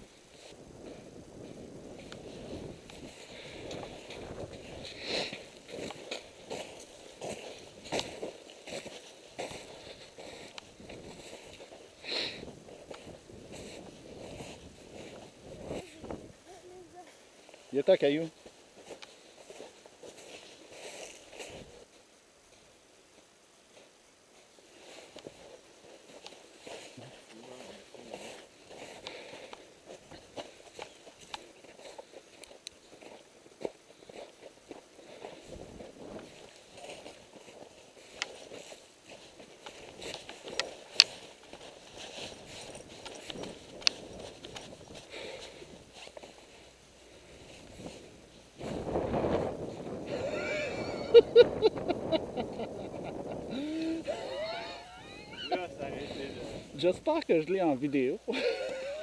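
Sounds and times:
footsteps on snow: 0.3s - 16.1s, 24.9s - 51.2s.

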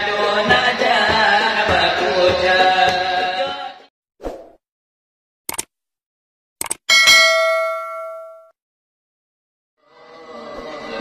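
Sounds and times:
bright bell ding: 6.9s - 8.5s.

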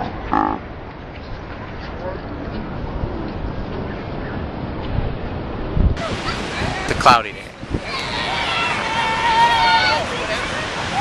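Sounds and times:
ocean surf: 0.0s - 11.0s
wind on microphone: 2.0s - 11.0s.

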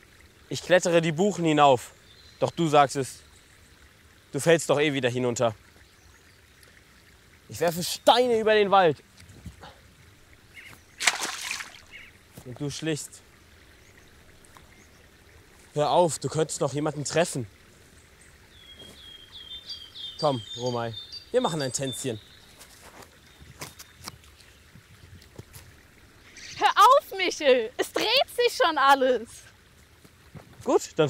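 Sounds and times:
stone splashing into pond: 10.6s - 12.6s.

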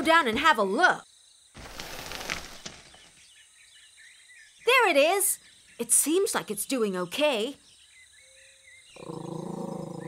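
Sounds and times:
rainforest ambience: 0.0s - 10.0s
bird chirps: 1.2s - 10.0s.

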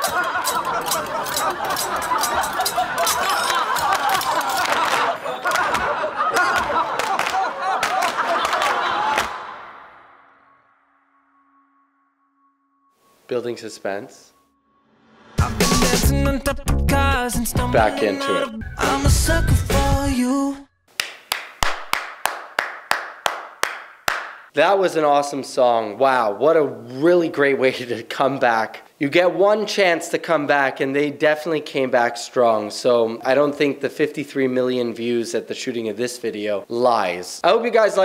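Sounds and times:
sharp handclap-like hits: 3.9s - 9.6s, 20.9s - 24.5s
pop vocal harmonies: 15.2s - 20.7s.

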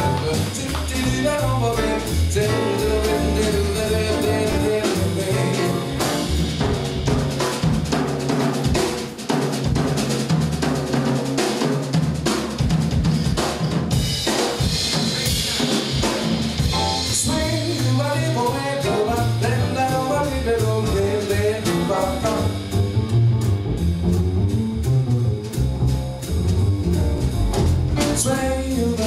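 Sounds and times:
upright bass: 0.0s - 8.3s, 14.8s - 29.0s
piano: 0.0s - 11.0s, 12.1s - 29.0s
drum kit with snare and rimshots: 0.0s - 29.0s.

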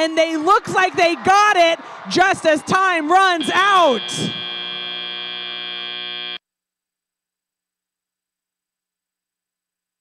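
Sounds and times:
buzzer tone: 3.4s - 6.4s.

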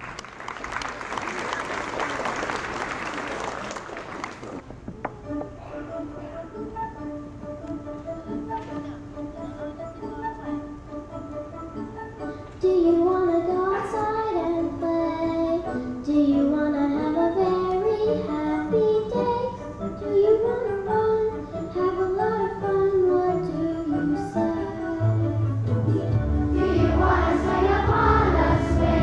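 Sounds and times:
instrumental accompaniment: 4.6s - 29.0s
girl singing into microphone: 12.5s - 25.6s.

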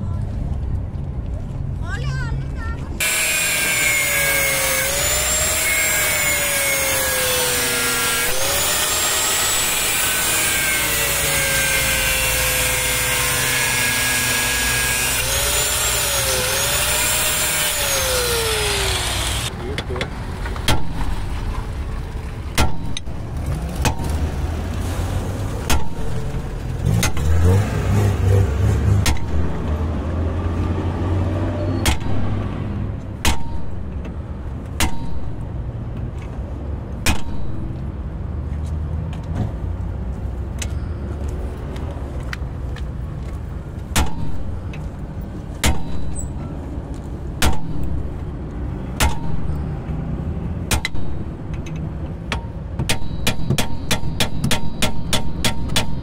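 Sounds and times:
hammer striking steel punch: 22.6s - 23.2s, 25.7s - 26.2s, 33.2s - 34.0s, 34.8s - 35.5s, 37.0s - 37.8s, 43.9s - 44.7s, 45.6s - 46.4s, 47.4s - 48.1s, 49.0s - 49.6s, 50.7s - 51.7s, 52.3s - 56.0s.

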